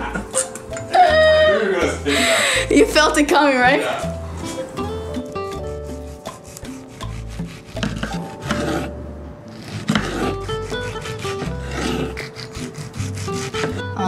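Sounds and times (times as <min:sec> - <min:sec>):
background music: 0:00.0 - 0:14.0
knife slicing tomato on wooden board: 0:04.0 - 0:14.0.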